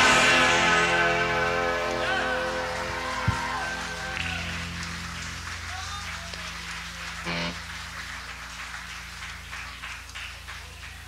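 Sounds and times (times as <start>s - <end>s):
band final chord ringing: 0.0s - 5.6s, 7.1s - 7.8s
amplifier hum: 0.0s - 10.5s
crowd cheers and whoops: 1.9s - 6.4s.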